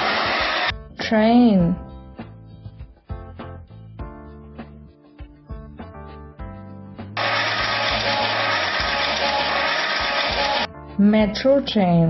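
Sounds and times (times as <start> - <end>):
light background music: 0.1 - 12.0.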